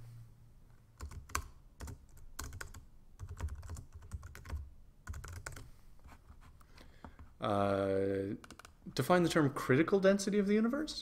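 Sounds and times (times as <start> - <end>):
keyboard typing: 1.0 - 5.7.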